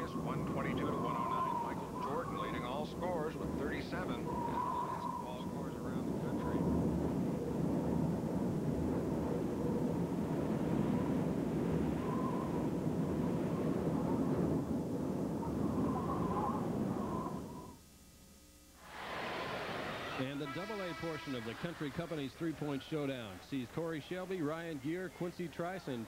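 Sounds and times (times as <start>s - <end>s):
faint wind whistle: 0.0s - 17.8s, 19.4s - 26.0s
storm wind blowing: 0.0s - 17.8s.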